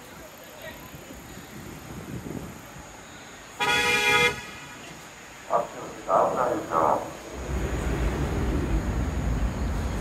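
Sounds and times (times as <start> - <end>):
city traffic rumble: 0.0 - 10.0
car horn blast: 3.6 - 4.6.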